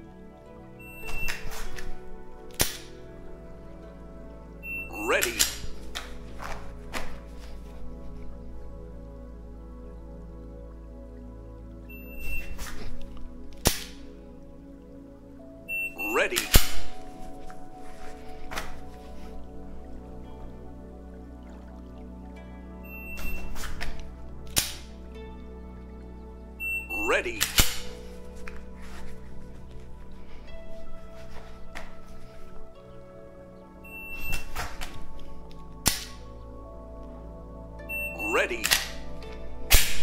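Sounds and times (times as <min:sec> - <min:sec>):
background music: 0:00.0 - 0:40.0
spoken prompt: 0:04.9 - 0:05.6, 0:16.0 - 0:16.6, 0:26.9 - 0:27.6, 0:38.1 - 0:38.9.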